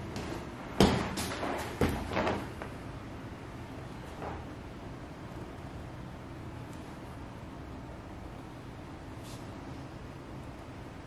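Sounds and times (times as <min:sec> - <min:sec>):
dull thumps on exercise mat: 0:00.2 - 0:02.5.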